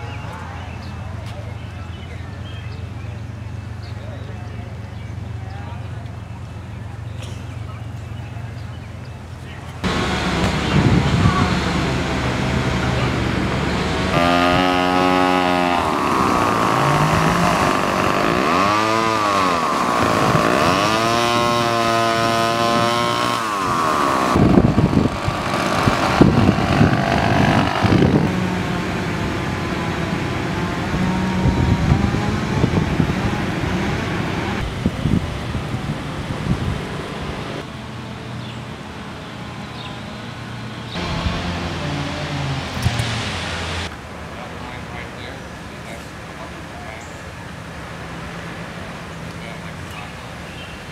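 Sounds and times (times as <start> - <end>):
small petrol engine revving: 9.8 - 37.7, 40.9 - 43.9.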